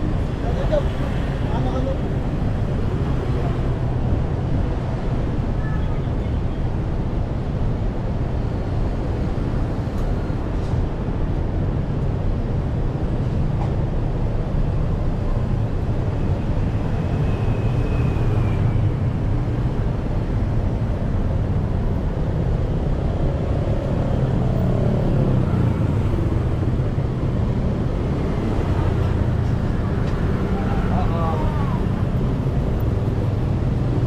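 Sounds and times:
road traffic rumble: 0.0 - 34.0.

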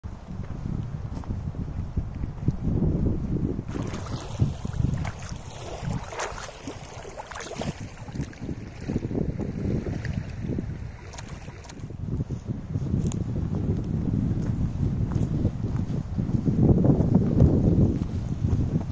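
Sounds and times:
wind buffeting microphone: 0.0 - 18.9.

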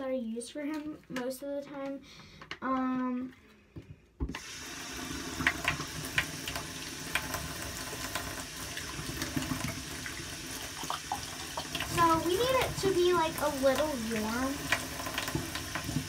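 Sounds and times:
tap water running into basin: 4.2 - 16.0.

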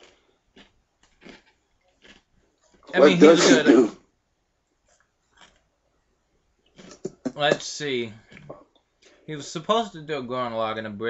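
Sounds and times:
man speaking: 2.9 - 3.9, 7.0 - 8.4, 9.3 - 11.0.

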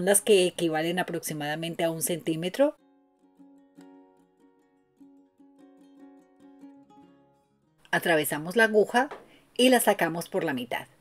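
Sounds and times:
plucked string instrument: 2.8 - 7.9.

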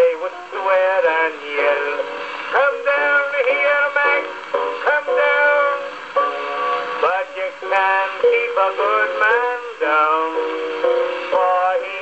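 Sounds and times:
man singing: 0.0 - 6.0, 7.0 - 12.0
piano accompaniment: 0.0 - 12.0.

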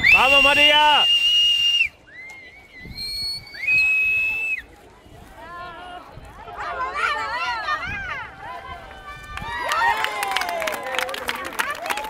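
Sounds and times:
long whistle blasts: 0.0 - 4.6
spectators cheering: 6.9 - 12.0.

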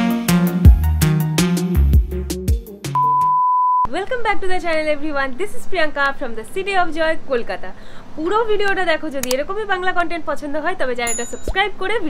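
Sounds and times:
background music with drums: 0.0 - 3.0
high-pitched electronic beep: 3.0 - 3.9.

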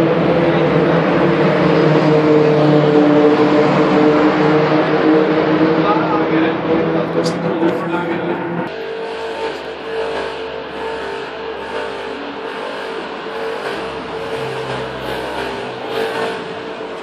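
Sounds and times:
car engines driving by: 0.0 - 8.8.

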